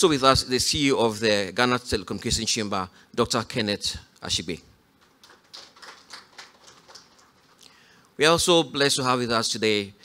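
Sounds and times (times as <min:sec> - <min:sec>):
light scattered hand-clapping: 0:05.0 - 0:07.6.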